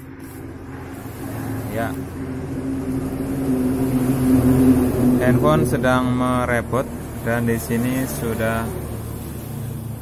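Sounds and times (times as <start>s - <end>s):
steady low motor hum: 0.0s - 10.0s.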